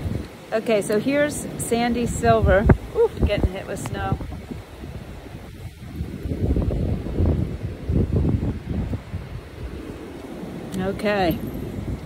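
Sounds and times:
wind gusting on microphone: 0:00.0 - 0:12.0.

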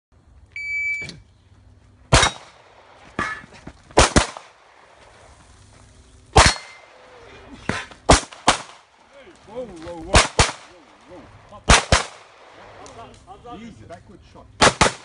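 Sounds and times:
shot timer beep: 0:00.6 - 0:01.1
pistol shots: 0:02.1 - 0:03.0, 0:04.0 - 0:04.7, 0:06.3 - 0:07.1, 0:08.1 - 0:08.9, 0:10.1 - 0:10.7, 0:11.6 - 0:12.9, 0:14.6 - 0:15.0.

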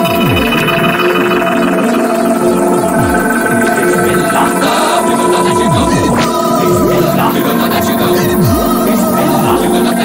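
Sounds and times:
electronic psytrance music: 0:00.0 - 0:10.0.

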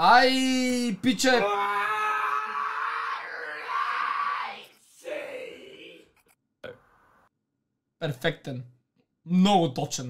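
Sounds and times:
young men shouting and screaming: 0:01.3 - 0:06.0.

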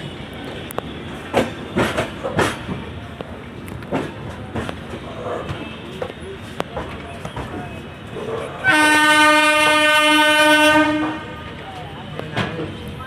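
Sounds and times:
train horn blast: 0:08.6 - 0:11.6.

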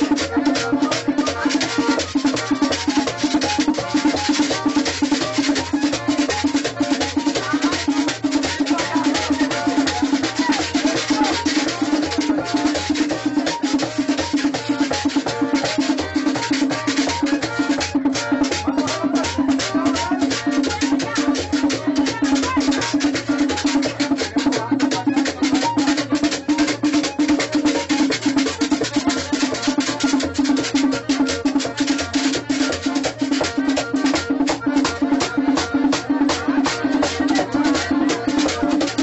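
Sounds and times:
voices: 0:00.0 - 0:26.6, 0:28.6 - 0:39.0
hand drum beating: 0:00.0 - 0:39.0
rattling percussion: 0:00.0 - 0:39.0.

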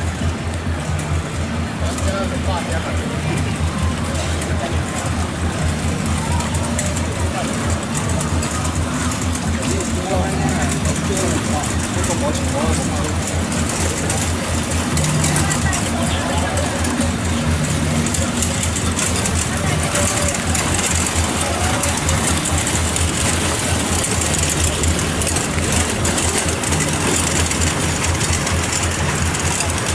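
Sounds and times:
vehicle engine rumbling: 0:00.0 - 0:29.9
voices: 0:00.0 - 0:29.9.

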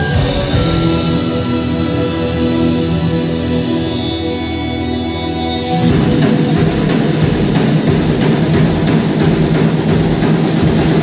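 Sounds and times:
drum kit beat: 0:00.0 - 0:02.2, 0:05.7 - 0:11.0
live rock band: 0:00.0 - 0:11.0.

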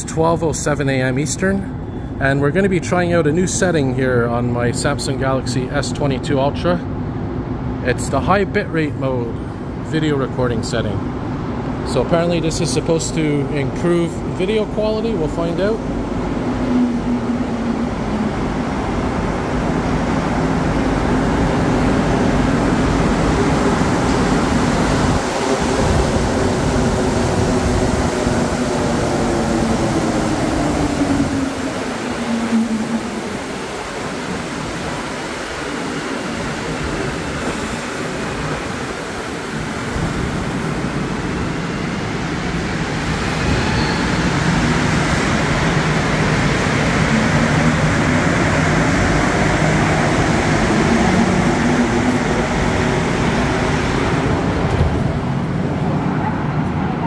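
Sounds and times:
train motor whine: 0:22.8 - 0:34.8.

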